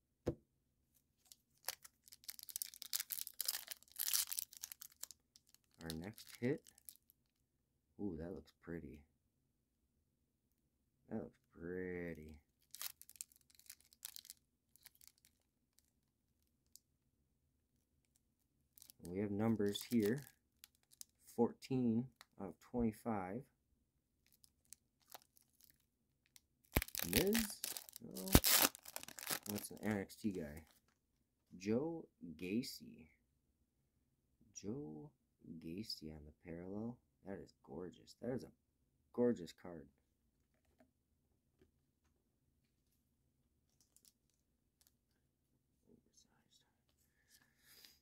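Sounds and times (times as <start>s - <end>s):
trading card clicks and rustles: 1.2s - 7.0s, 18.8s - 21.1s, 26.7s - 30.8s
foil wrapper crinkling and tearing: 1.3s - 7.0s, 12.6s - 15.9s, 18.8s - 21.1s, 24.3s - 25.8s, 26.7s - 30.0s.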